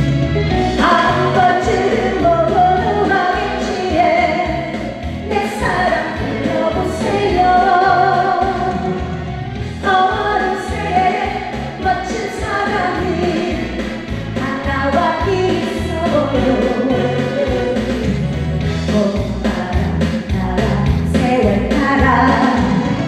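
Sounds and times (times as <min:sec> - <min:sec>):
backing track with steady beat: 0:00.0 - 0:23.0
woman singing: 0:00.8 - 0:09.0, 0:09.8 - 0:18.2, 0:18.9 - 0:23.0.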